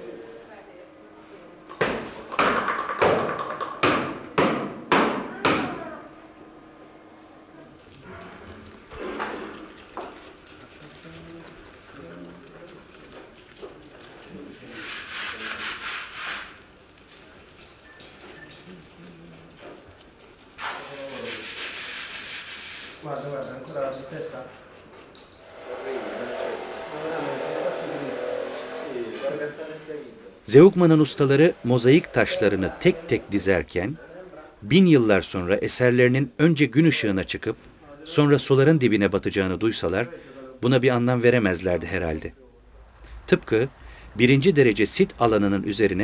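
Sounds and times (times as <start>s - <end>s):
stiff brush scrubbing wet stone: 8.0s - 16.6s.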